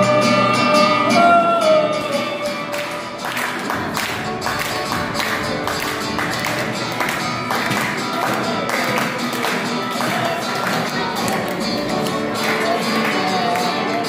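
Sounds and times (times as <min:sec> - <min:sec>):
acoustic guitars strumming: 0:00.0 - 0:14.0
hand claps: 0:02.4 - 0:14.0.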